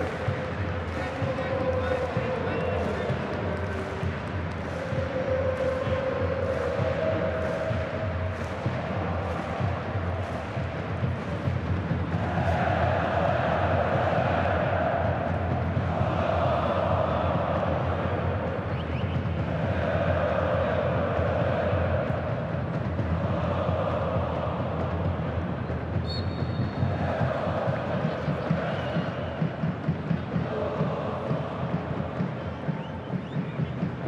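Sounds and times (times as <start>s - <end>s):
football supporters chanting: 0.0s - 34.0s.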